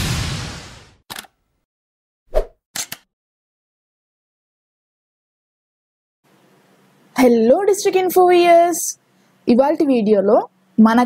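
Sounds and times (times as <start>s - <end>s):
loud pop sound effect: 0.0s - 1.0s.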